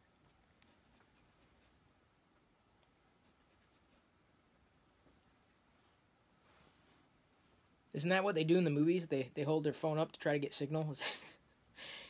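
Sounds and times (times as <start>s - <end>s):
faint light ticks: 0.2s - 1.7s, 2.8s - 3.0s.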